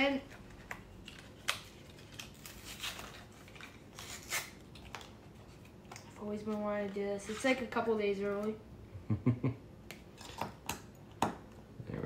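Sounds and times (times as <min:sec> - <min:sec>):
packaging rustling and crinkling: 0:00.3 - 0:06.2.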